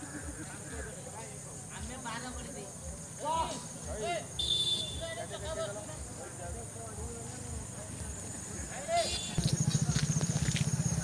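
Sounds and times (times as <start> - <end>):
crickets chirring: 0.1 - 11.0
walking footsteps: 9.0 - 11.0.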